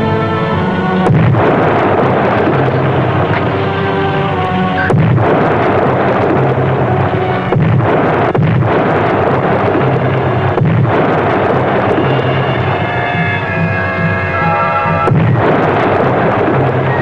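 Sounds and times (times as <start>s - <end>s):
underwater explosions rumbling: 0.0s - 17.0s.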